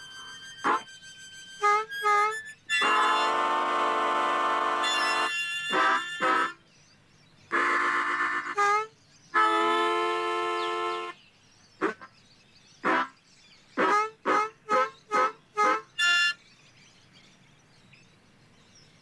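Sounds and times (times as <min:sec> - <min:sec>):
harmonica chords: 0:00.0 - 0:06.6, 0:07.5 - 0:11.2, 0:13.8 - 0:16.4.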